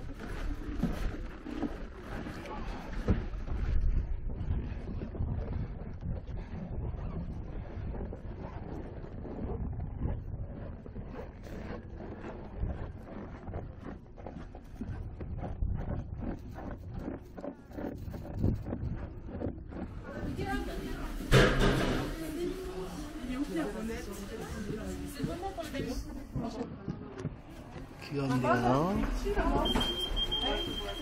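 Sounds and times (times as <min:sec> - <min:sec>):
wind buffeting microphone: 0:00.0 - 0:22.3.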